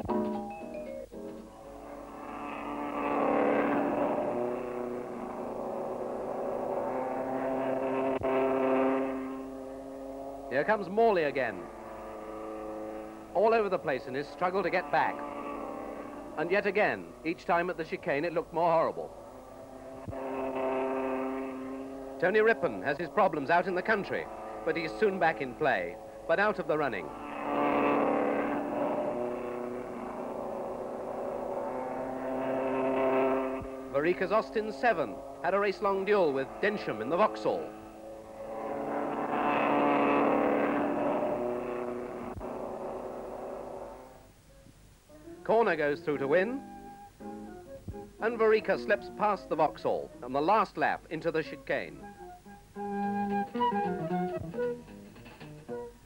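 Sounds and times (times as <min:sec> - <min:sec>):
melody of held notes: 0:00.0 - 0:01.8, 0:46.3 - 0:48.2, 0:52.0 - 0:56.0
racing car engine running: 0:00.0 - 0:44.4.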